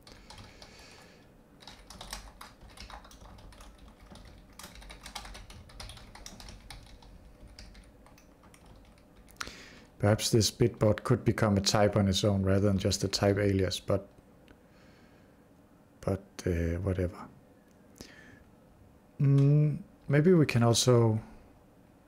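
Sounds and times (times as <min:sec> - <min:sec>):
keyboard typing clicks: 0:00.0 - 0:00.7, 0:01.6 - 0:09.4.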